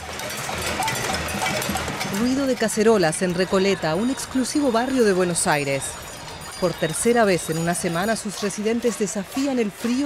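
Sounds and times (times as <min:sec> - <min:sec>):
crowd banging pots and pans: 0:00.0 - 0:10.0.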